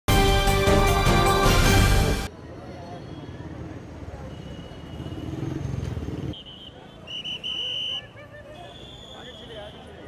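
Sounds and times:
passing traffic: 0.9s - 10.0s
shrill whistle blasts: 6.3s - 9.9s.

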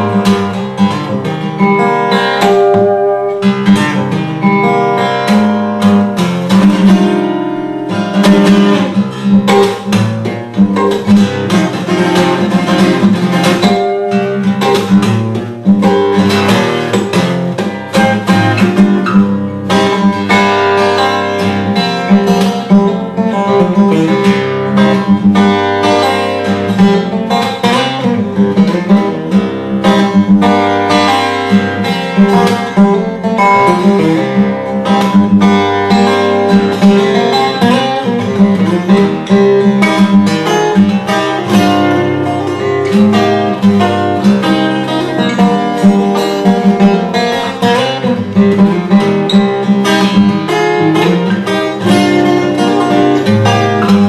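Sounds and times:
fingerstyle acoustic guitar: 0.0s - 54.0s.

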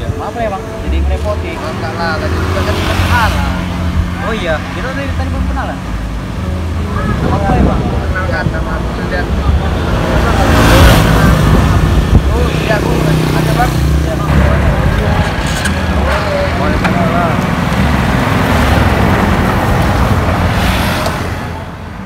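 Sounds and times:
indistinct voices: 0.0s - 21.8s
loud rushing noise: 1.5s - 22.0s.

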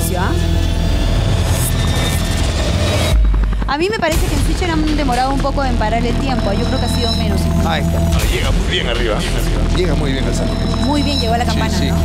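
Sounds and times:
loud deep rumbling: 0.0s - 12.0s.

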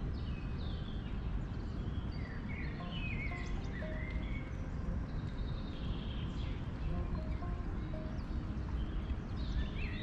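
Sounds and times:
birds singing: 0.0s - 10.0s
soft music notes: 0.0s - 10.0s
wind: 0.0s - 10.0s.

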